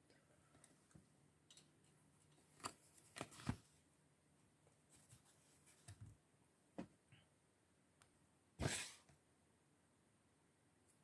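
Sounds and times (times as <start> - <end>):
paperback book handling rustles: 2.5 - 3.7.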